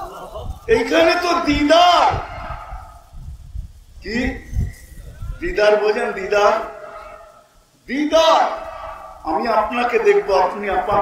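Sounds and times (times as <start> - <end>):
man chanting with echo: 0.7 - 3.0, 5.4 - 11.0.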